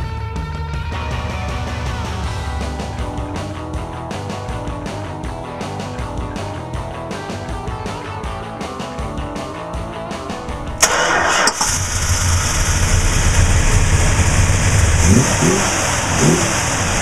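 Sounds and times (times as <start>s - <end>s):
background music: 1.0s - 11.9s
car engine idling deeply: 10.2s - 17.0s
engine revving: 10.2s - 17.0s
engine cranking: 10.3s - 17.0s.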